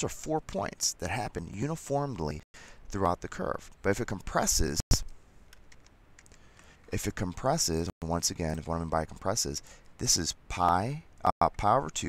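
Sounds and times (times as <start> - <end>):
computer keyboard clicks: 5.5 - 6.4.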